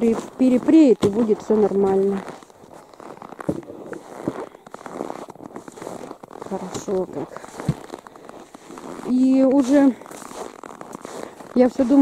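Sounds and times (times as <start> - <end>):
footsteps crunching in snow: 0.0 - 12.0
irregular crackling: 0.0 - 12.0.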